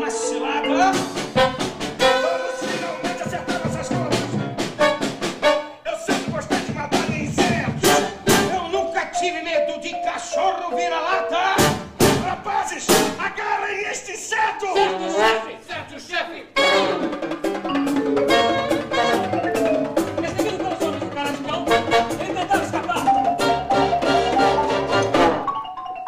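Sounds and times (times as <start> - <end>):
marimba: 0.0 - 5.0, 7.8 - 11.9, 16.6 - 26.0
jazz ensemble playing: 0.0 - 5.8, 6.6 - 13.2, 16.6 - 25.7
drum kit strikes: 0.8 - 8.8, 11.6 - 13.2, 17.0 - 24.6.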